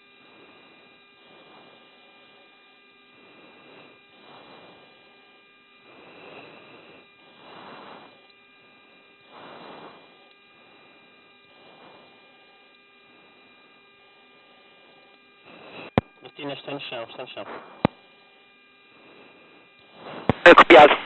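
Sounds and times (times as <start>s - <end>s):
electrical hum with fixed tones: 0.0s - 21.0s.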